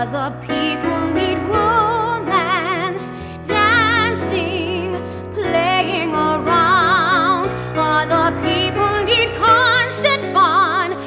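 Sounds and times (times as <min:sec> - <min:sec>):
woman singing with vibrato: 0:00.0 - 0:11.0.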